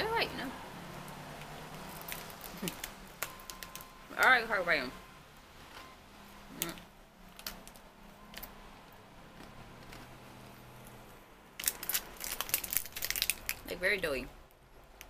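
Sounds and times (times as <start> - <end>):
plastic wrapper crackling: 1.4 - 3.9, 7.3 - 8.6, 11.6 - 13.8
crunchy food being chewed: 1.7 - 3.8.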